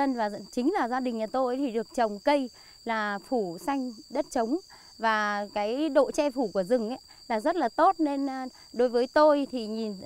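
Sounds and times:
insects droning: 0.0 - 10.0
woman speaking: 0.0 - 10.0.

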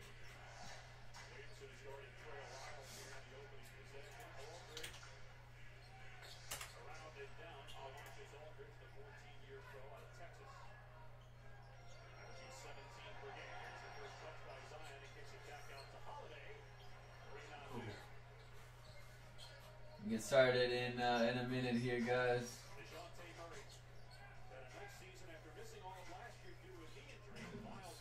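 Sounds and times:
faint sports broadcast speech: 0.0 - 28.0.

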